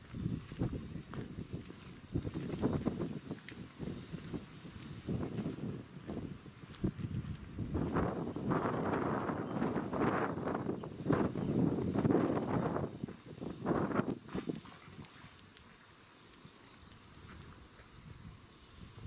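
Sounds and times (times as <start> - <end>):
shuffling footsteps on pavement: 0.0 - 19.0.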